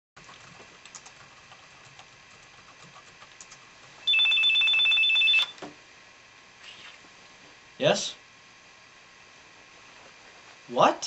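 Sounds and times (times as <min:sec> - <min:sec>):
mobile phone ringing: 0:04.1 - 0:05.6.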